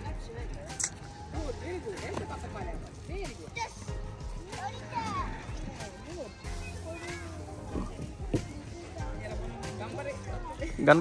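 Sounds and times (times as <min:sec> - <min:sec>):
background music: 0:00.0 - 0:11.0
children calling out: 0:03.4 - 0:08.0.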